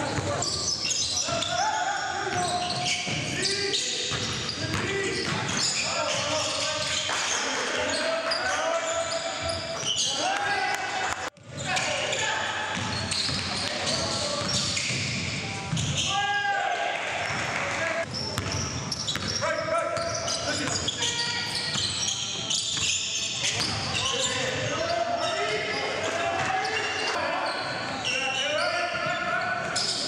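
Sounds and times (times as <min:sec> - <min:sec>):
sneakers squeaking: 0:00.0 - 0:10.8, 0:11.4 - 0:16.3, 0:17.1 - 0:30.0
players' indistinct calls: 0:00.0 - 0:30.0.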